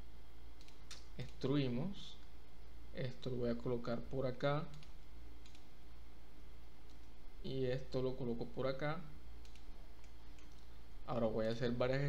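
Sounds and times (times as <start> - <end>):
steady low hum: 0.0 - 12.0
computer mouse clicks: 0.6 - 1.4, 4.7 - 5.7, 9.4 - 10.7.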